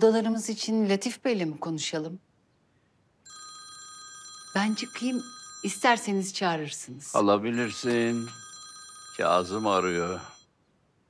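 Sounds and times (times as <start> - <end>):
phone ringtone: 3.3 - 6.4, 7.2 - 10.4.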